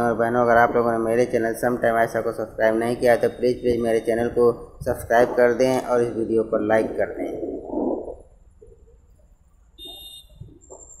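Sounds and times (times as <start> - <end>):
faint street noise: 0.0 - 11.0
high ringing tone: 9.8 - 11.0.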